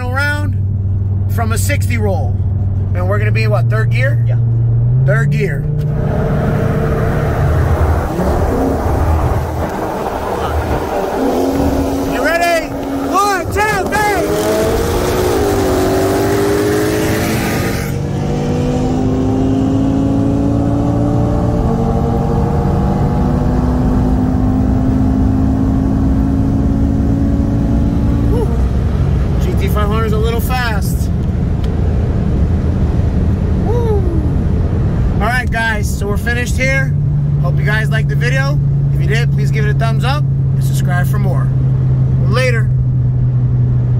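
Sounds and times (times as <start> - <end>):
car engine at full throttle: 0.0 - 43.9.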